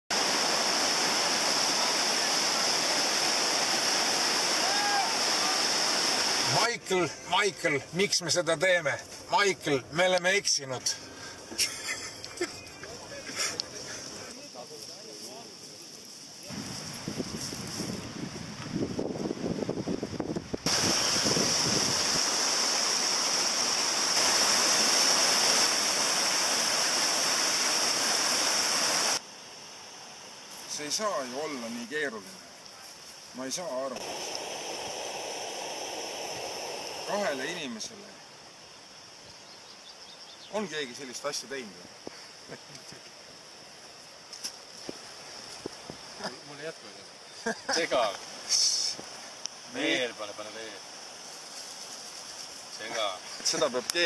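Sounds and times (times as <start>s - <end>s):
whitewater rushing: 0.1s - 7.8s, 20.7s - 29.2s, 33.9s - 37.9s.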